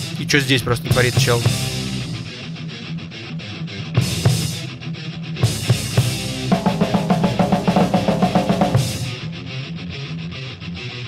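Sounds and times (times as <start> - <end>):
heavy metal band playing: 0.0 - 3.0, 3.8 - 9.6
fast drum fill: 0.9 - 1.7, 5.5 - 9.2
cymbal crash: 6.0 - 9.2.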